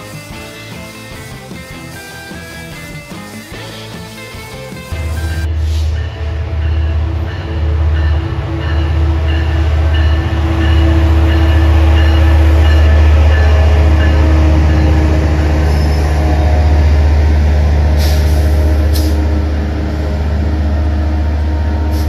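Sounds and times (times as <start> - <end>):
diesel locomotive engine rumble: 0.0 - 22.0
train wheels squealing: 7.3 - 16.8.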